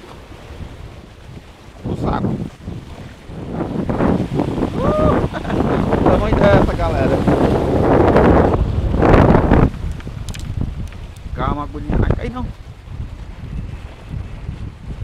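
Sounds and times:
surf breaking on rocks: 0.0 - 15.0
wind buffeting microphone: 0.0 - 15.0.

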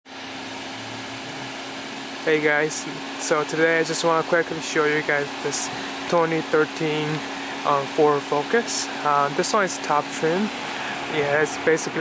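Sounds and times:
engine idling hum: 0.1 - 12.0.

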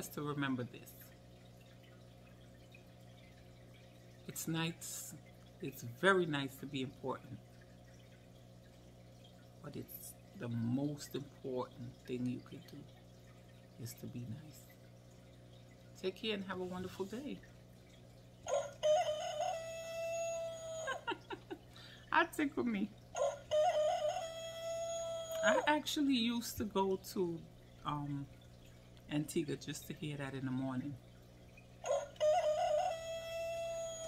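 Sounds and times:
rooster crowing: 18.5 - 21.1, 23.2 - 25.6, 31.8 - 34.0.

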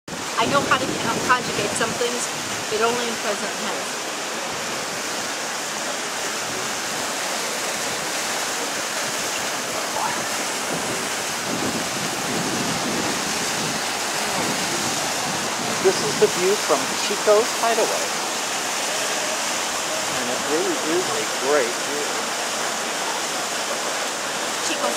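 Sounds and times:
river water rushing over boulders: 0.1 - 24.9.

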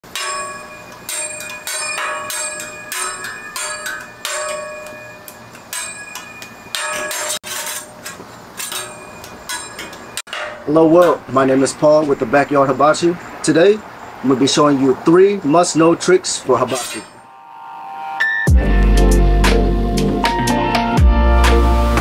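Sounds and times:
metal spatulas clanging: 0.0 - 11.3, 16.6 - 17.2.

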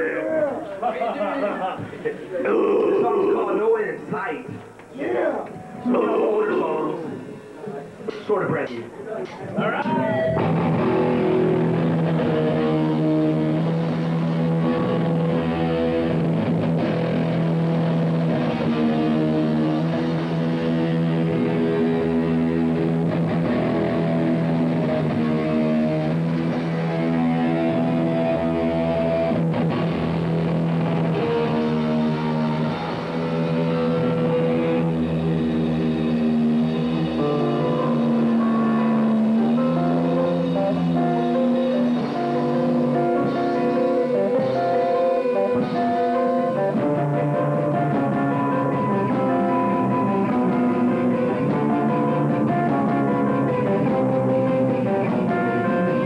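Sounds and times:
electric guitars: 9.4 - 56.0
live rock band playing: 9.9 - 56.0.

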